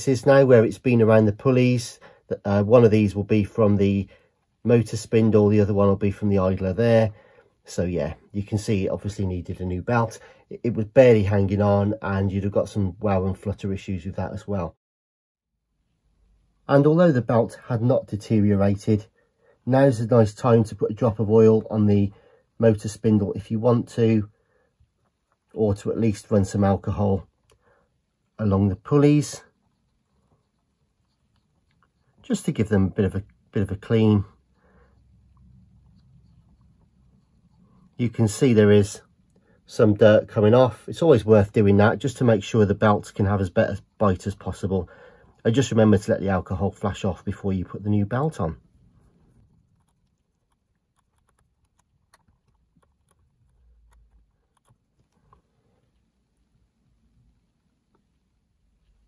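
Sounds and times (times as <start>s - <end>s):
cotton swab scratching: 24.8s - 56.1s.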